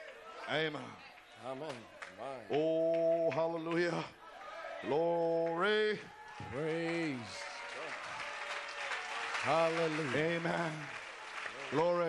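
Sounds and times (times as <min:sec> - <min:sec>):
congregation clapping: 0:00.0 - 0:04.2, 0:04.9 - 0:12.0
man's voice: 0:00.4 - 0:04.2, 0:04.8 - 0:07.6, 0:09.4 - 0:12.0.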